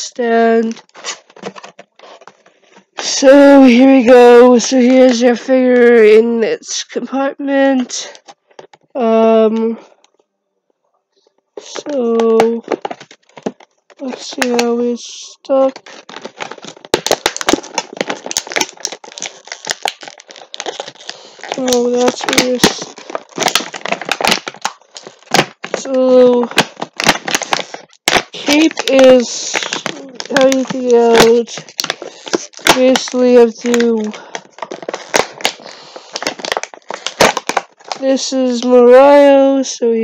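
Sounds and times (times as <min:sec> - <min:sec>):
plastic packaging crinkling: 0:00.4 - 0:05.3, 0:11.6 - 0:14.9, 0:15.5 - 0:39.3.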